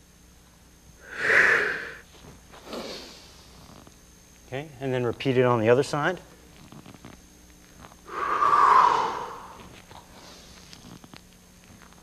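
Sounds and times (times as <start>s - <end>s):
man breathing hard: 1.0s - 2.0s, 8.1s - 10.4s.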